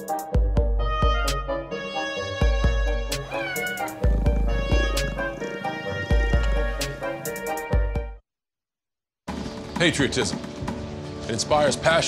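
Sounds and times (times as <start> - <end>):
cat meowing: 3.2 - 7.1.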